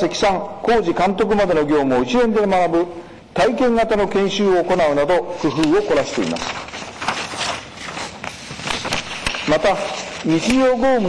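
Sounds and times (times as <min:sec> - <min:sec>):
paper rustling: 0:05.4 - 0:11.0.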